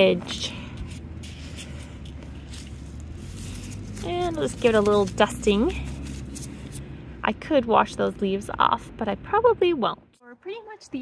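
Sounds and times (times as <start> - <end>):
steady low hum: 0.0 - 10.9
faint rustling of scooping: 0.6 - 6.8.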